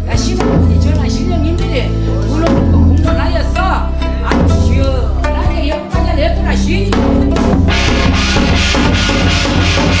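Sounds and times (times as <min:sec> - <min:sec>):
steady drumming: 0:00.0 - 0:01.6, 0:02.3 - 0:03.4, 0:06.6 - 0:10.0
ritual music: 0:00.0 - 0:10.0.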